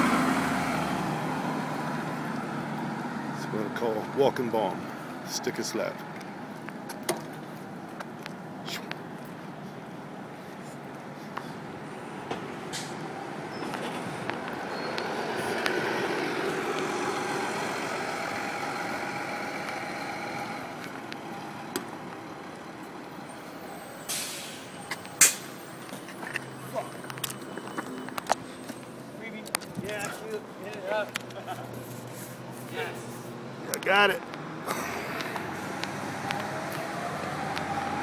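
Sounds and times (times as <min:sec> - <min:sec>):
heavy vehicle passing: 0:00.0 - 0:06.0, 0:11.0 - 0:38.0
short hiss: 0:24.1 - 0:25.4.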